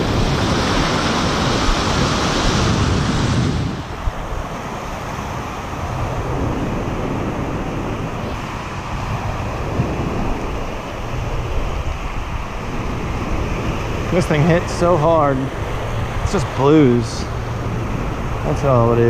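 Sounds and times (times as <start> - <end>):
small waves breaking on sand: 0.0 - 19.0
wind rumbling on microphone: 0.0 - 19.0.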